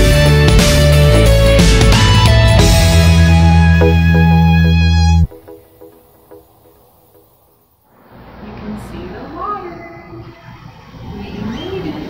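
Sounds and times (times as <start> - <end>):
woman's voice: 8.5 - 10.3.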